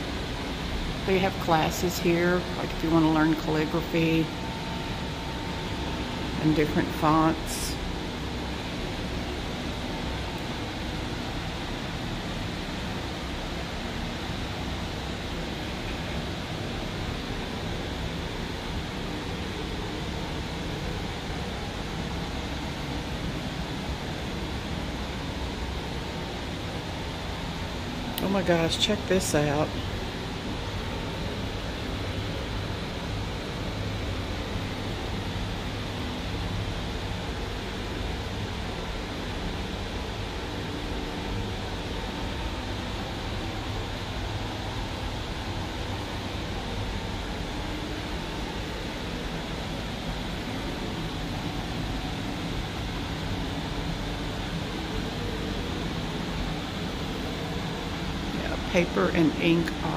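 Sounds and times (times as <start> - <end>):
ventilation hum and hiss: 0.0 - 59.9.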